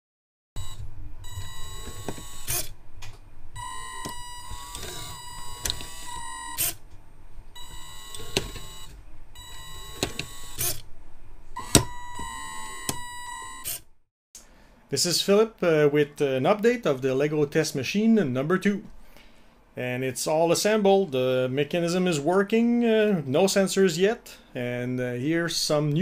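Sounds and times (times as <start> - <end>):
electric motors whining: 0.6 - 2.8, 3.6 - 6.8, 7.5 - 10.9, 11.6 - 13.9.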